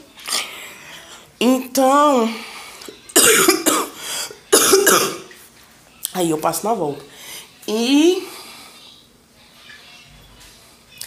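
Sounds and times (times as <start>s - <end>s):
woman coughing: 3.2s - 5.3s.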